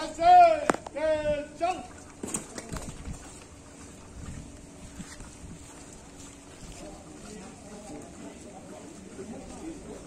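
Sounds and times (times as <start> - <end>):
faint voices: 5.3 - 10.0.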